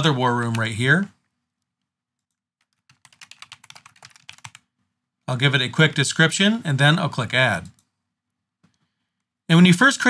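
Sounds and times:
computer keyboard key clicks: 2.2s - 4.6s.

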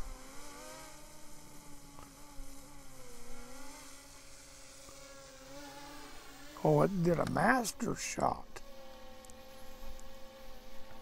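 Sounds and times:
drone propellers buzzing: 0.0s - 11.0s.

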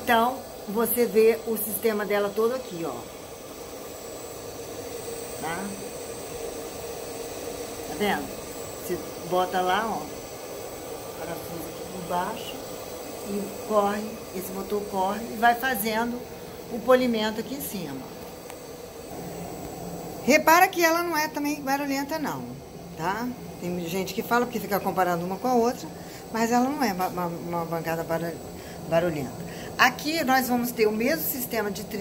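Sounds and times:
electric motor humming and whining: 0.0s - 32.0s.

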